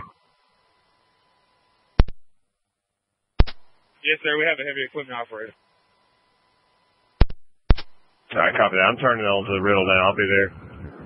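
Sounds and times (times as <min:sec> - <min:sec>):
two-way radio clicks: 0:03.4 - 0:03.8, 0:07.2 - 0:08.0
faint radio hiss: 0:03.4 - 0:11.0.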